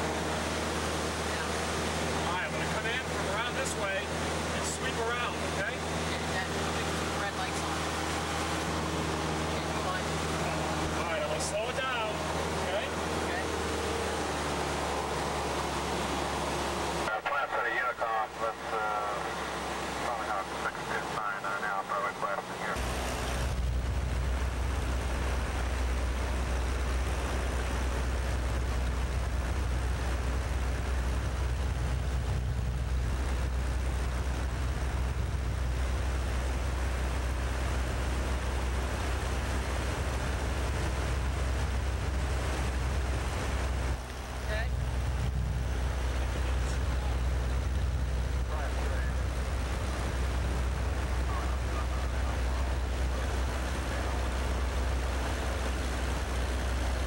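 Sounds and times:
aircraft engine rumble: 0.0s - 57.0s
wind noise in cabin: 23.4s - 38.2s.

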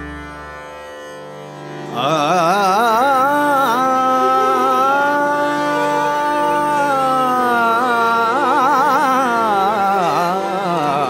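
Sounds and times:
harmonium notes held: 0.0s - 11.0s
person singing: 1.9s - 11.0s.

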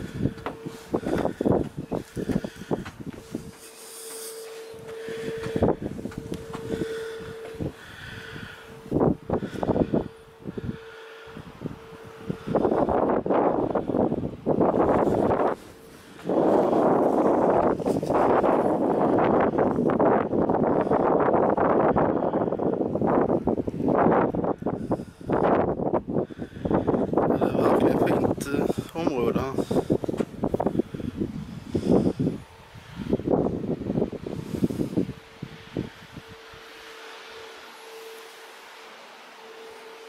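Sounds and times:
wind buffeting microphone: 0.0s - 3.9s, 4.5s - 37.9s
faint steady hum: 0.0s - 40.0s.

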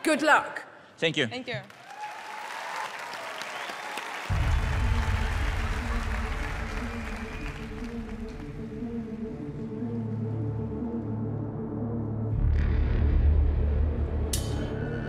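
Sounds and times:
studio audience applauding: 1.6s - 9.1s.

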